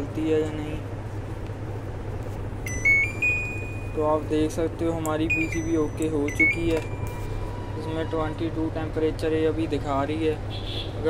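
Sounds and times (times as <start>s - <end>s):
steady low hum: 0.0s - 10.5s
rising high beep: 2.7s - 4.0s, 5.3s - 7.2s.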